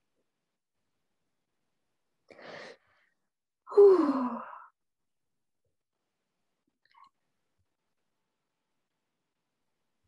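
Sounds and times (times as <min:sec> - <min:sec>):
woman sighing: 0:03.7 - 0:04.7.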